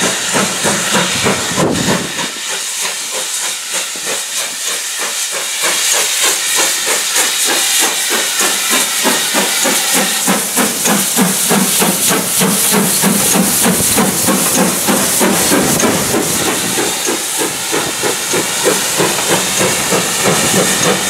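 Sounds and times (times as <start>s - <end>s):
steam hissing: 0.0s - 21.0s
steam locomotive exhaust beating: 0.0s - 21.0s.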